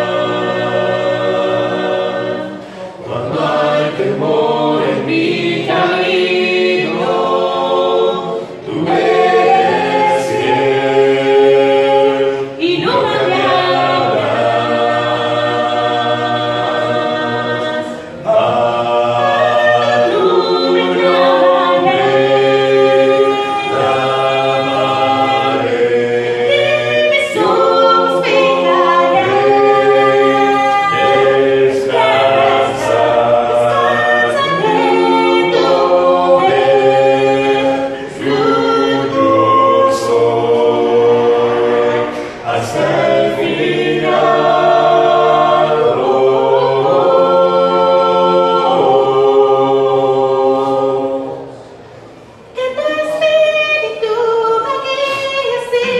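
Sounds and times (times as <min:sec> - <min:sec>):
group singing a cappella hymn: 0:00.0 - 0:55.9.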